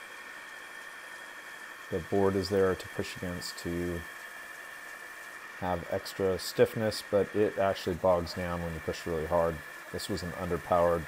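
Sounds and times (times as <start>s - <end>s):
drill press motor humming: 0.0s - 11.0s.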